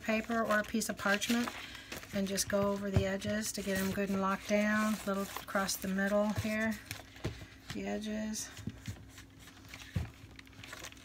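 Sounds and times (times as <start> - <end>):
paper sheet rustling: 0.0 - 7.8, 8.4 - 11.0.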